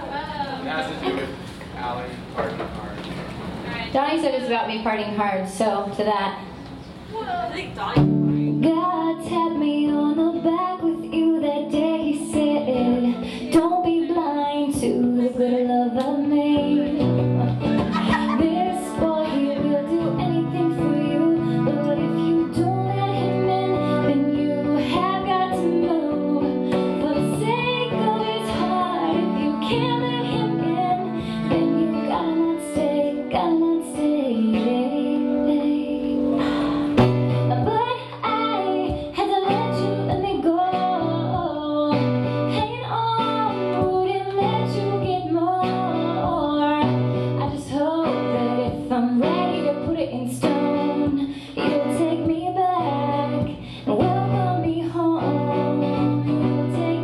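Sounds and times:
woman singing: 8.0 - 57.0
strummed acoustic guitar: 10.1 - 57.0.

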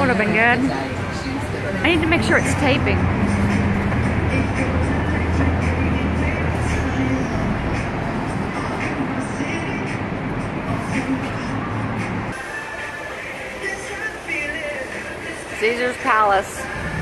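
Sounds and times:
bus engine low rumble: 0.0 - 12.3
busy street traffic: 0.0 - 17.0
music: 0.0 - 17.0.

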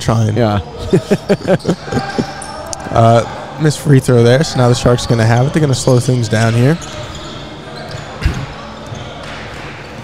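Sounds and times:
gym ambience: 0.0 - 10.0
men laughing: 0.6 - 2.6.

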